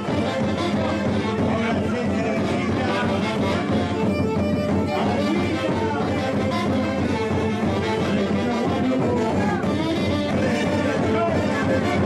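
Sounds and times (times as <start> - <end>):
live dance band playing: 0.0 - 12.0.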